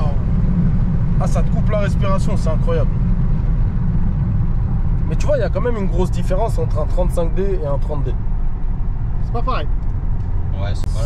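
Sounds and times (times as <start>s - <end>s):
diesel car engine and road rumble: 0.0s - 11.0s.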